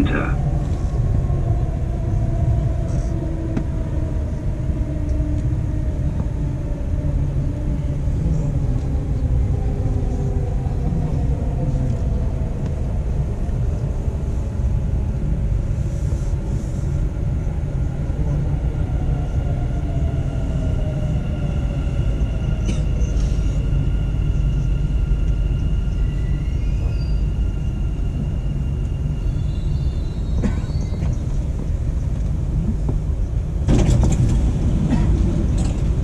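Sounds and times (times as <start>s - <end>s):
train wheels rumbling on track: 0.0s - 36.0s.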